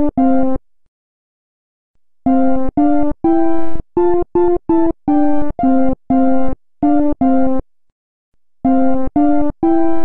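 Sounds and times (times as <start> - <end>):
chiptune melody of buzzy notes: 0.0 - 0.6, 2.2 - 7.6, 8.6 - 10.0.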